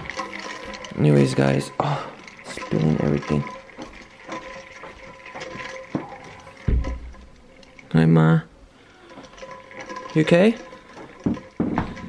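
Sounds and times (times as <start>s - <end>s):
metal bowl handling clicks and knocks: 9.1s - 12.0s.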